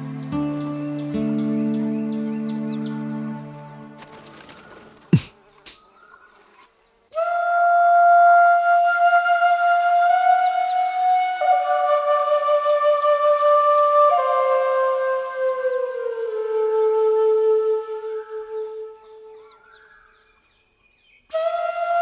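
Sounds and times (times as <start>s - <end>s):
bird chirps: 0.1s - 7.1s, 9.5s - 11.4s, 14.6s - 16.4s, 18.3s - 21.4s
long flute note: 7.2s - 19.4s, 21.3s - 22.0s.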